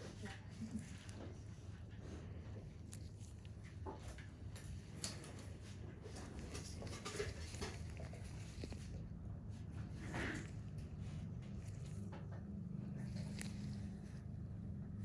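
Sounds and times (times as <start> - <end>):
soft rustles: 0.0 - 15.0
steady low hum: 0.0 - 15.0.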